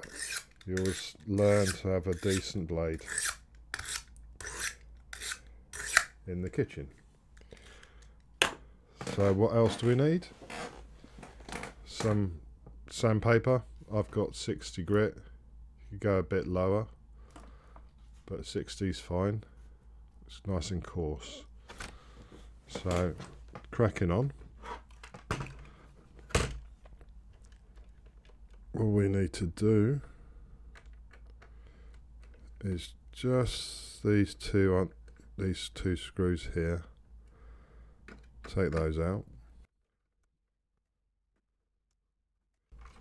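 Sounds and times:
knife blade scraping sharpening stone: 0.0 - 6.2.

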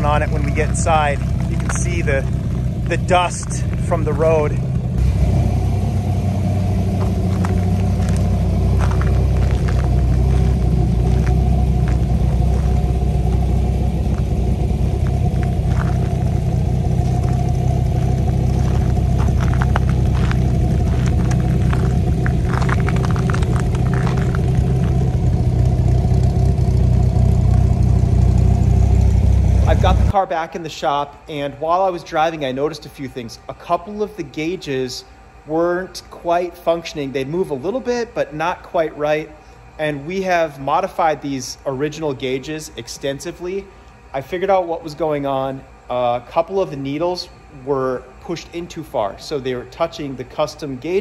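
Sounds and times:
car engine idling: 0.0 - 30.2.

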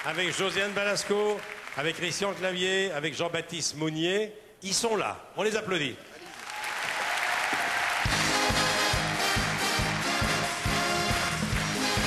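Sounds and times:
studio audience applauding: 0.0 - 2.8, 6.2 - 12.0
music with steady beat: 8.1 - 12.0.

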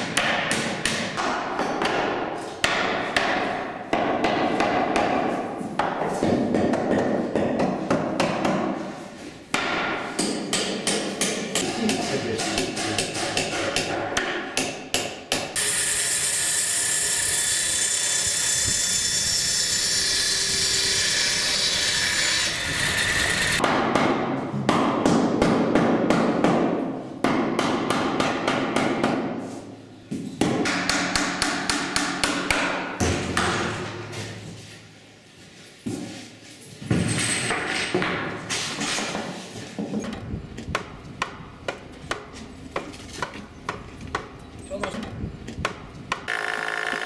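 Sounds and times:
power tool running: 46.3 - 47.0.

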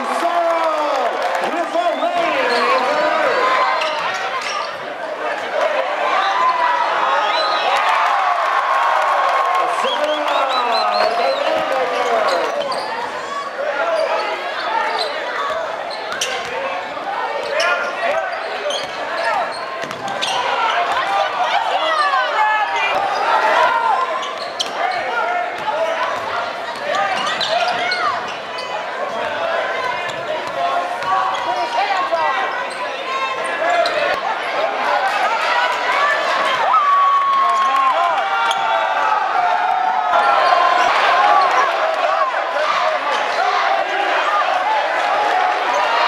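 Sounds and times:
crowd talking and shouting: 0.0 - 46.0
basketball bouncing on court: 19.8 - 20.3.

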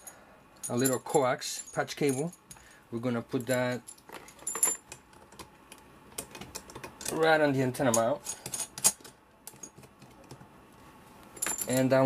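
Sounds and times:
metal cable connectors clinking: 0.0 - 2.6, 3.3 - 10.4, 11.4 - 12.0.

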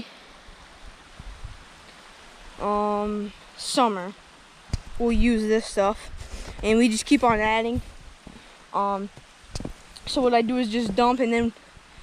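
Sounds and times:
water hiss: 0.0 - 12.0
faint low thumps: 4.7 - 11.5.

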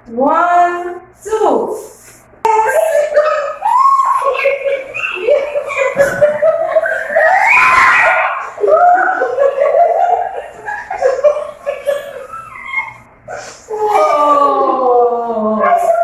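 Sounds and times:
woman laughing and shrieking: 2.6 - 14.4
child laughing and shrieking: 2.7 - 9.3, 11.9 - 14.3.

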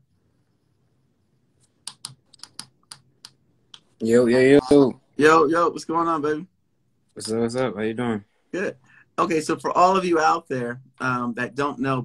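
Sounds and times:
computer keyboard typing: 1.6 - 3.9.

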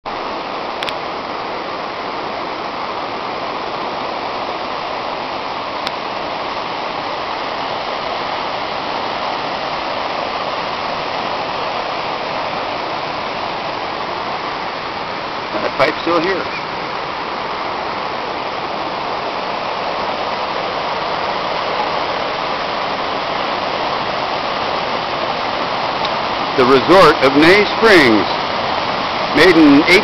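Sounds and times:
creek rushing over rocks: 0.1 - 30.0
faint clicks: 0.8 - 1.0.

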